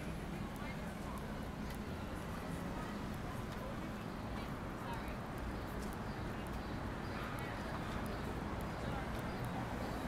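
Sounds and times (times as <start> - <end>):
city street traffic hum: 0.0 - 10.0.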